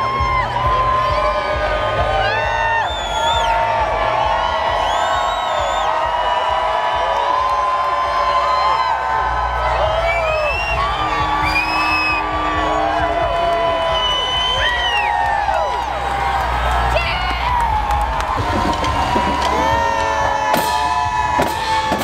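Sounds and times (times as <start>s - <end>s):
crowd cheering and shouting: 0.0s - 22.0s.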